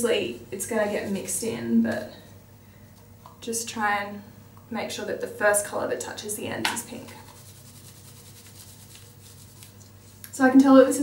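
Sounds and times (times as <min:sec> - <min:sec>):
low steady hum: 0:00.0 - 0:11.0
gloved hands rubbing wet hair: 0:07.0 - 0:10.4.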